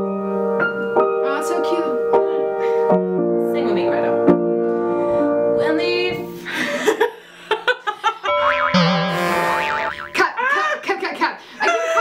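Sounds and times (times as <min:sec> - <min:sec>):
cartoon boing tone: 0:08.3 - 0:10.3.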